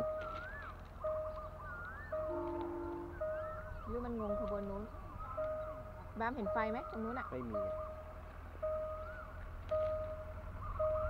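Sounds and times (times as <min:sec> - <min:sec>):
level crossing warning tone: 0:00.0 - 0:11.0.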